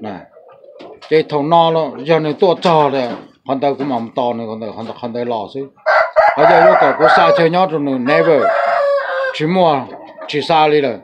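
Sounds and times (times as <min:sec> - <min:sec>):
man talking: 0:00.0 - 0:00.4, 0:01.0 - 0:05.8, 0:06.4 - 0:08.7, 0:09.3 - 0:11.0.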